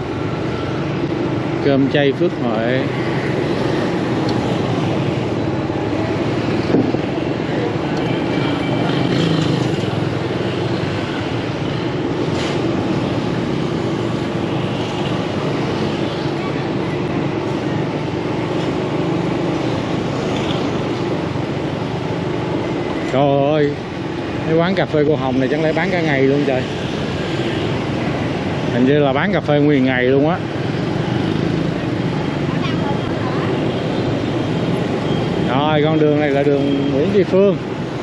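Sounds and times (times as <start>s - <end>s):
scooter and car engines humming: 0.0s - 38.0s.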